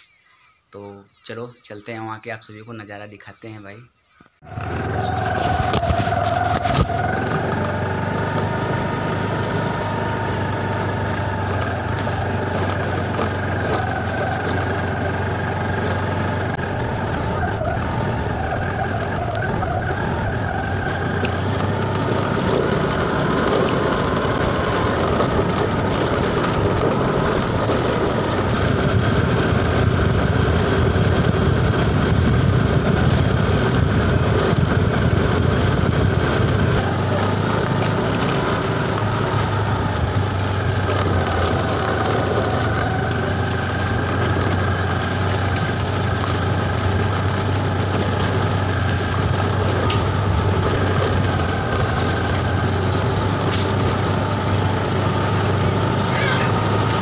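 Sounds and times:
scooter engine running: 0:04.4 - 0:57.0.

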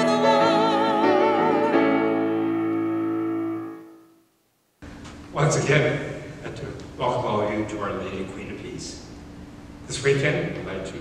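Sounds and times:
held keyboard chord: 0:00.0 - 0:04.2.

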